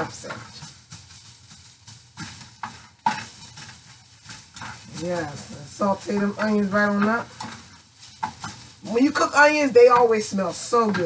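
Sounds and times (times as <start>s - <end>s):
onions sizzling in a frying pan: 0.0s - 11.0s
spatula scraping a pan: 0.0s - 11.0s.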